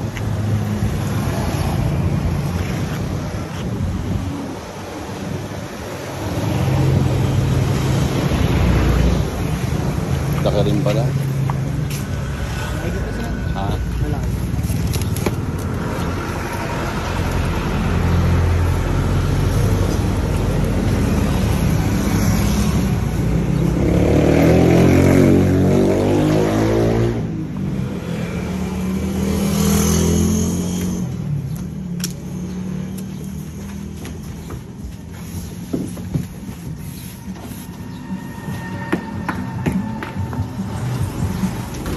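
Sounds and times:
vehicle engine humming: 0:00.0 - 0:25.6, 0:27.4 - 0:41.9
people talking: 0:12.6 - 0:14.3.

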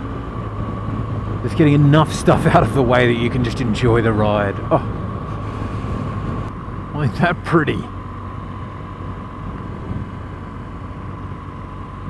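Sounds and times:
motorcycle engine humming: 0:00.0 - 0:12.0
wind and road noise: 0:00.0 - 0:12.0.

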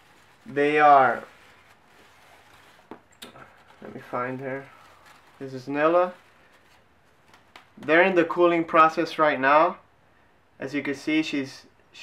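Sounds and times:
soft rustling in plastic tub: 0:00.0 - 0:08.4.

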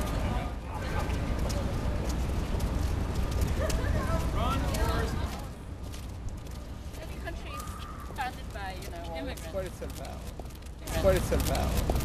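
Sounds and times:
hard-soled footsteps on stone: 0:01.0 - 0:12.0.

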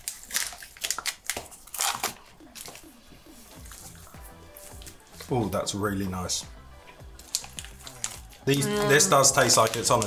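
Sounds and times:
wrapper crinkling: 0:00.0 - 0:05.4, 0:07.2 - 0:10.0.

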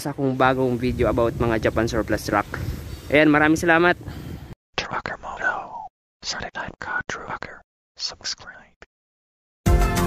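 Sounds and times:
person whispering: 0:04.8 - 0:08.9.

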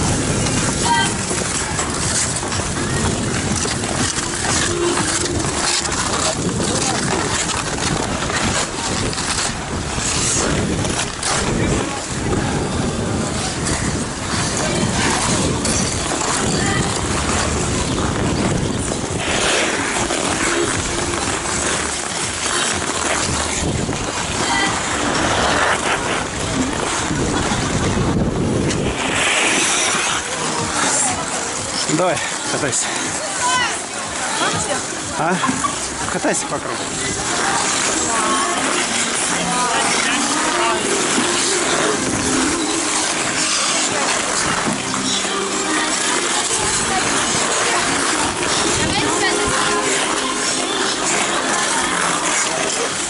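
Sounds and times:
ice skate blades scraping ice: 0:00.0 - 0:53.0
skaters' voices: 0:00.0 - 0:53.0.

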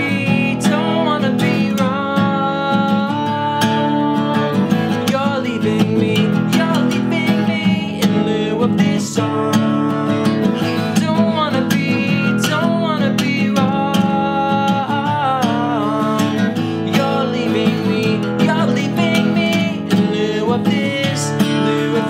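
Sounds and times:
acoustic guitar strumming: 0:00.0 - 0:22.0
man singing: 0:00.0 - 0:22.0.

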